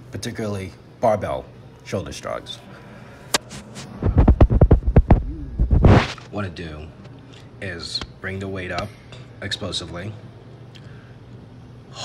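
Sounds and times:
short broad rush: 3.3s - 6.3s
loud deep thumps: 4.0s - 6.1s.

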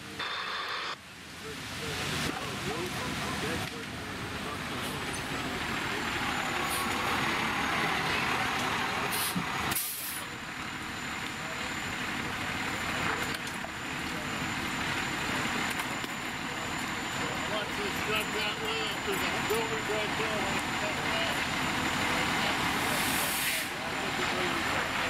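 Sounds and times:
diesel engine idling: 1.8s - 25.0s
air brake hisses: 9.1s - 10.3s, 22.9s - 23.8s.

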